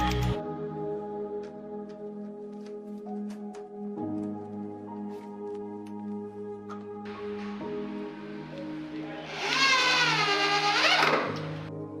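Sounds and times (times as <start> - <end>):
background music: 0.0 - 12.0
electric drill driving screw: 9.2 - 11.7.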